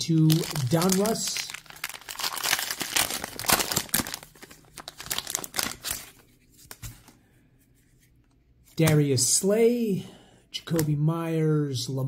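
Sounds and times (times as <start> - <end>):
wrapper tearing and crinkling: 0.0 - 6.2.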